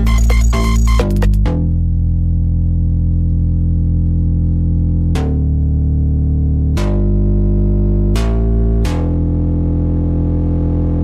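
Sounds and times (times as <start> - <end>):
deep synthesizer bass chord: 0.0 - 11.0.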